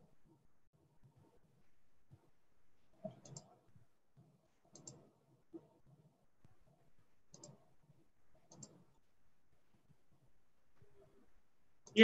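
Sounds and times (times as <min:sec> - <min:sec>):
computer mouse double-clicks: 0:03.1 - 0:03.5, 0:04.7 - 0:05.0, 0:07.3 - 0:07.6, 0:08.4 - 0:08.8.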